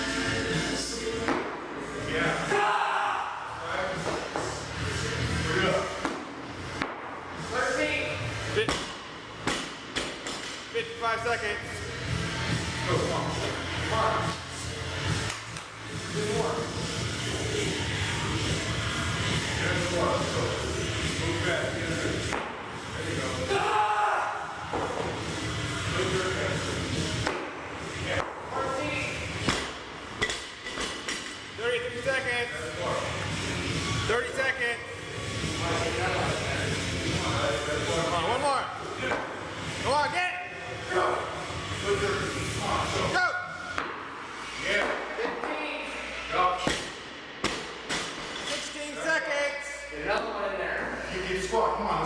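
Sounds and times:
background music: 0.0s - 44.8s
voices in a gym: 0.0s - 52.0s.

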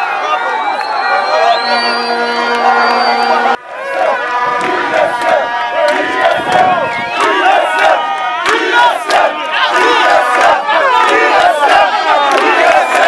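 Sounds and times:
crowd shouting and cheering: 0.0s - 13.0s.

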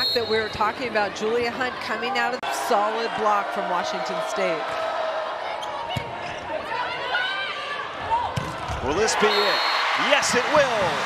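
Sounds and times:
arena crowd noise: 0.0s - 11.0s
sneakers squeaking on court: 5.6s - 6.6s.

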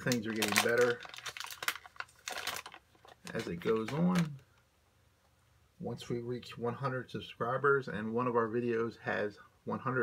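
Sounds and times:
foil wrapper crinkling: 0.0s - 4.6s.

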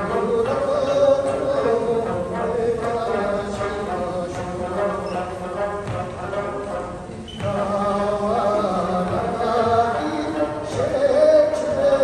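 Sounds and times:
strummed lutes: 0.0s - 12.0s
group singing: 7.4s - 12.0s.

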